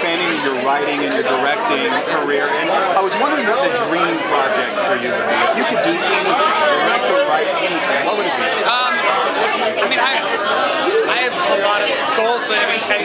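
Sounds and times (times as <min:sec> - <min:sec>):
crowd chatter: 0:00.0 - 0:13.0.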